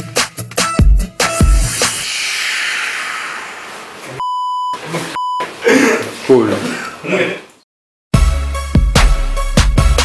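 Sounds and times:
high censor bleeps: 4.2s - 5.4s
man speaking: 4.8s - 7.6s.

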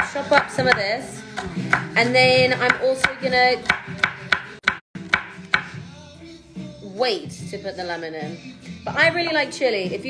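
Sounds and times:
knife chopping on wooden board: 0.0s - 2.0s, 2.6s - 5.8s
background music: 0.0s - 10.0s.

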